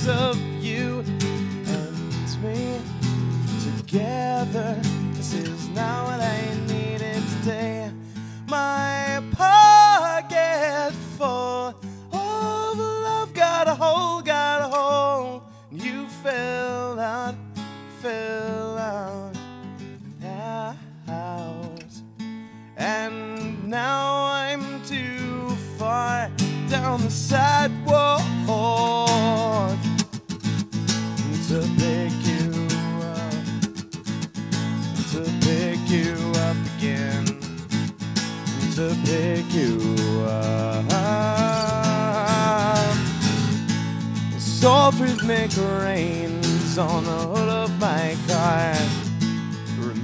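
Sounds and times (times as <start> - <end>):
man singing: 0.0 - 19.4, 20.1 - 22.0, 22.8 - 30.2, 31.1 - 33.8, 34.8 - 50.0
acoustic guitar strumming: 0.0 - 50.0.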